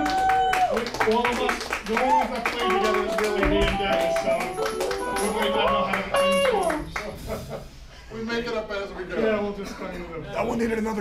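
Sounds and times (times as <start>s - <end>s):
audience clapping: 0.0s - 7.2s
band instrument notes: 2.6s - 6.8s.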